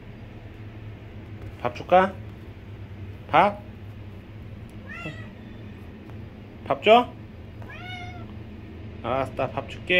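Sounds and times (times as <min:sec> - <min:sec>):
cat meowing softly: 0:04.8 - 0:05.6, 0:07.6 - 0:08.3.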